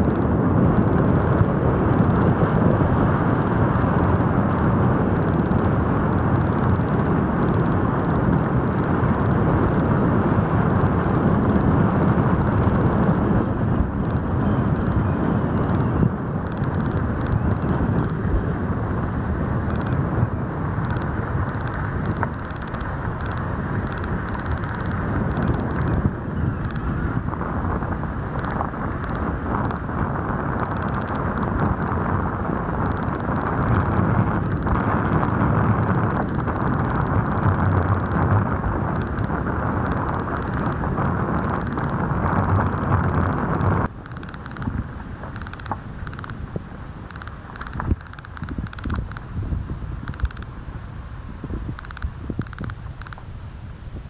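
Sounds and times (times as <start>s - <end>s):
vehicle driving on dirt road: 0.0s - 54.0s.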